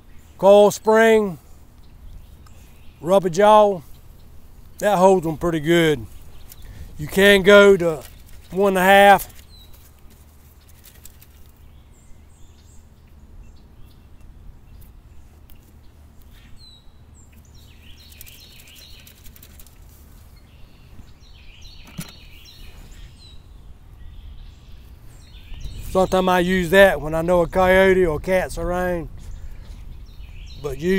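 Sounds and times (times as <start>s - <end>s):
small birds chirping: 0.0s - 30.9s
low steady rumble: 1.3s - 30.9s
dirt rustling through hand sifter: 4.8s - 11.7s, 17.6s - 21.2s.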